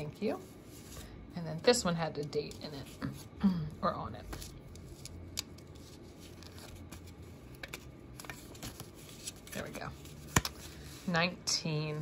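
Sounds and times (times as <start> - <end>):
paper rustling: 4.2 - 11.2.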